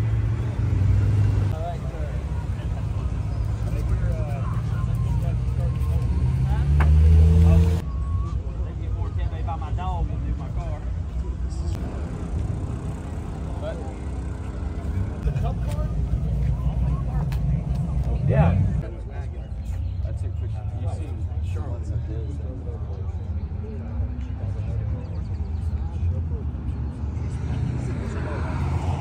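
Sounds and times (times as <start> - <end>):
engine revving: 0.0 - 1.7, 4.8 - 7.8, 11.7 - 18.8
people chatting: 1.5 - 12.1, 12.9 - 29.0.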